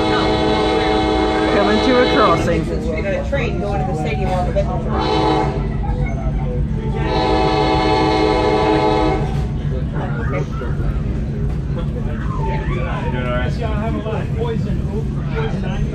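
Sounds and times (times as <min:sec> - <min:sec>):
train horn blast: 0:00.0 - 0:03.1, 0:04.7 - 0:05.8, 0:06.9 - 0:09.6
train rumbling on rails: 0:00.0 - 0:15.9.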